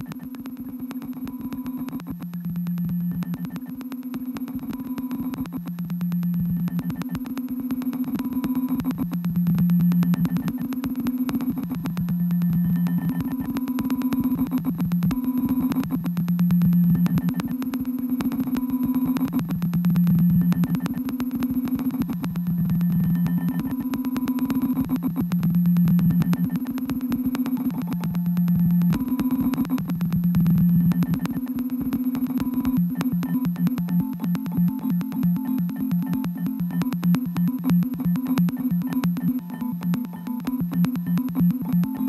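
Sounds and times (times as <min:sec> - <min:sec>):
fast electronic clicks: 0:00.0 - 0:42.0.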